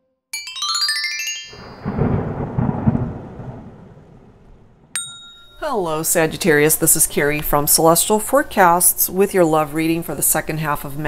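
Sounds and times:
chime: 0.4s - 2.4s, 5.0s - 6.0s
thunder rumble: 1.6s - 5.0s.

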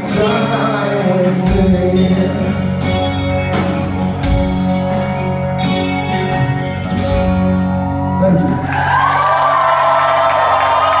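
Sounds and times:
crowd cheering and whooping: 7.6s - 11.0s.

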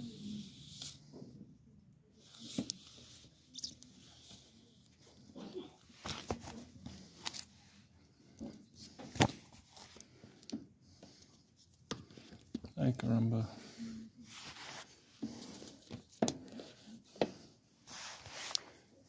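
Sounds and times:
books clicking and rustling: 5.8s - 7.5s, 8.4s - 10.2s.

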